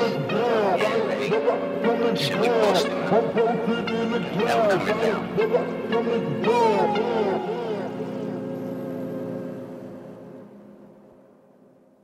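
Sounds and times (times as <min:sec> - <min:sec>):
held music chord: 0:00.0 - 0:11.5.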